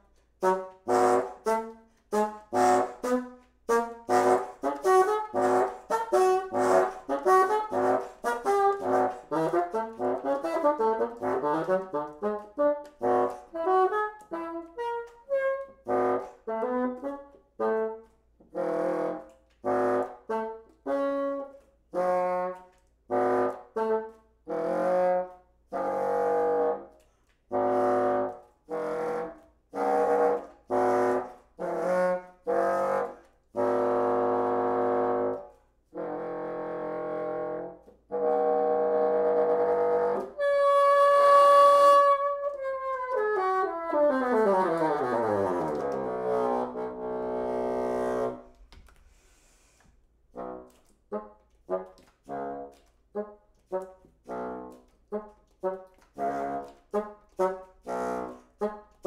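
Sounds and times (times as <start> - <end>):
solo bassoon playing: 0.0 - 48.7, 50.3 - 59.0.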